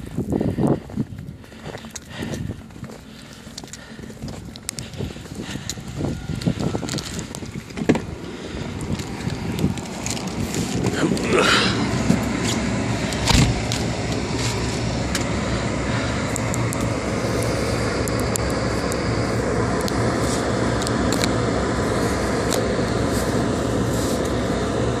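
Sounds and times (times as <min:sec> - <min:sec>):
car engine and tyres on wet road: 0:01.3 - 0:25.0.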